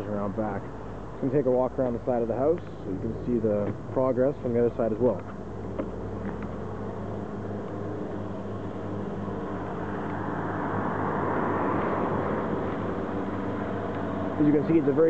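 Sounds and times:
low engine hum: 0.0 - 15.0
passing motor vehicle: 0.0 - 15.0.

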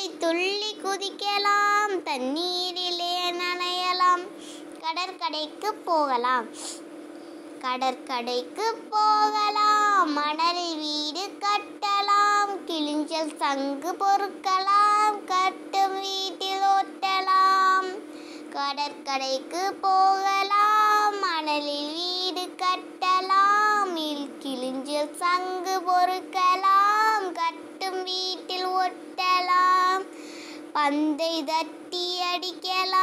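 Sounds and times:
child singing a rhyme: 0.0 - 6.6, 7.6 - 33.0.

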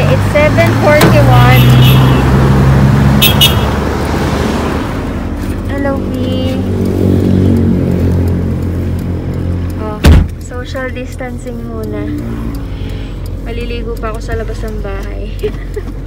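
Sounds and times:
car engine and road noise: 0.0 - 16.0
loud sharp thump: 10.0 - 10.4.

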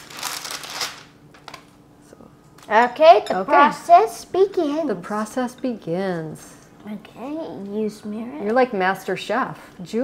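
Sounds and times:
plastic wrap crinkling: 0.0 - 1.8.

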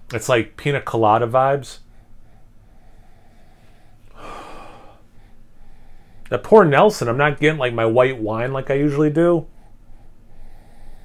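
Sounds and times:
long nose sniff: 9.5 - 11.0.

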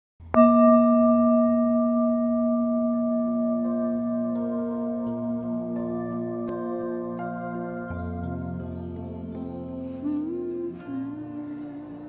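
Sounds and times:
soft music notes: 0.2 - 12.0
bell-like metal tone ringing: 0.3 - 12.0.

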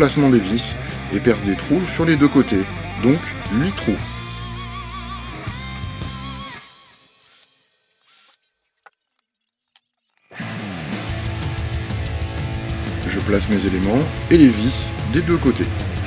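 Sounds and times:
guitar music: 0.0 - 6.9, 10.3 - 16.0.

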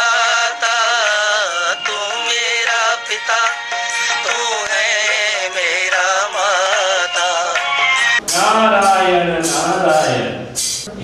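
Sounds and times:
person singing ornamented notes: 0.0 - 8.4
music: 0.0 - 10.9.

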